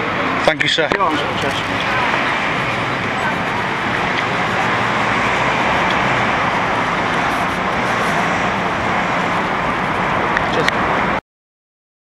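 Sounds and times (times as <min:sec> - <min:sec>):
traffic hiss and rumble: 0:00.0 - 0:11.2.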